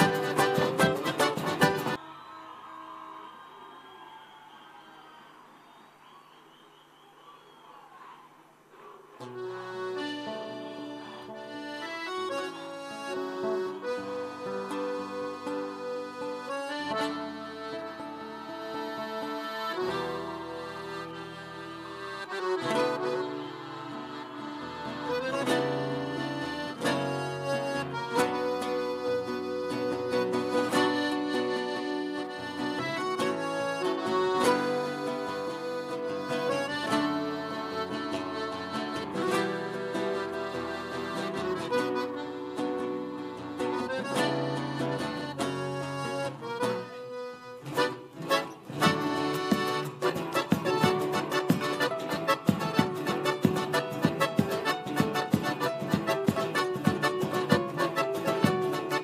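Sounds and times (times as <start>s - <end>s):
accordion folk music with guitar: 0.0s - 2.0s, 9.2s - 59.0s.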